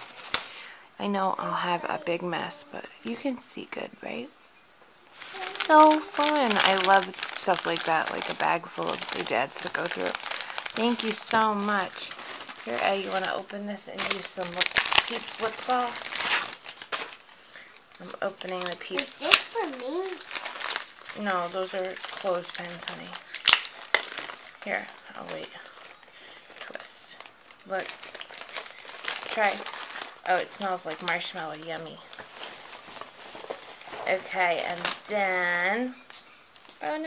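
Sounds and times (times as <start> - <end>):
packaging crinkling: 0.0 - 0.7, 5.1 - 36.9.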